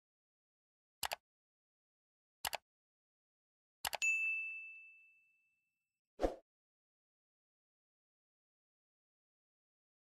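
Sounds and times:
high notification bell ding: 0:04.0 - 0:05.4.

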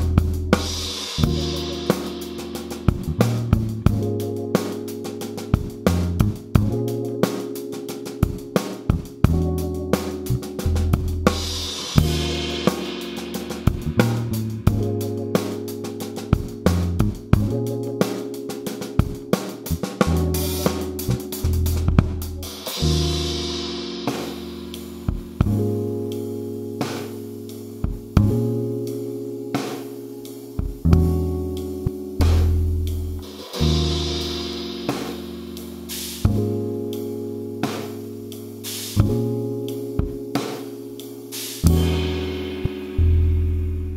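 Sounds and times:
drum kit groove: 0:00.0 - 0:43.5
sampled backing track: 0:00.0 - 0:43.9
cymbal crash: 0:11.5 - 0:14.4.

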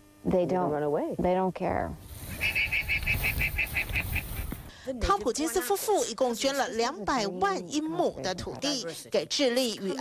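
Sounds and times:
guanaco shrill trill: 0:02.2 - 0:04.5.

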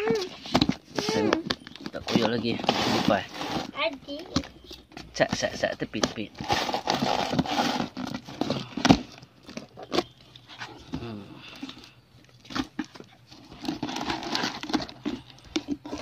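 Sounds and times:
paper and plastic crinkling: 0:00.0 - 0:16.0
packing tape ripping: 0:06.4 - 0:08.2.

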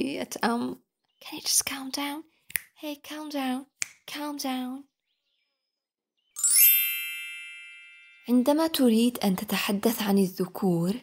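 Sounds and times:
bright chime: 0:06.4 - 0:08.5.

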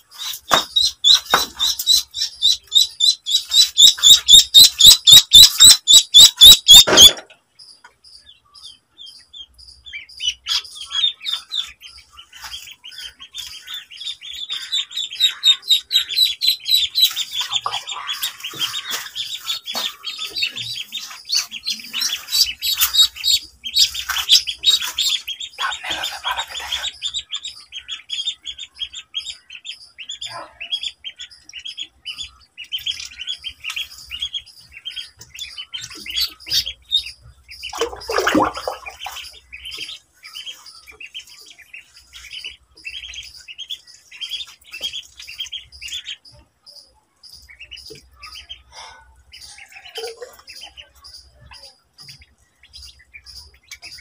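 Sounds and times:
ducklings peeping: 0:00.0 - 0:54.0.

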